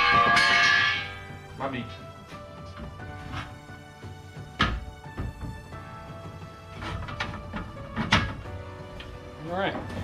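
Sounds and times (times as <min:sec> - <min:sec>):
metal bars knocking and clanking: 0:00.0 - 0:01.3, 0:06.8 - 0:08.5
background music: 0:00.0 - 0:10.0.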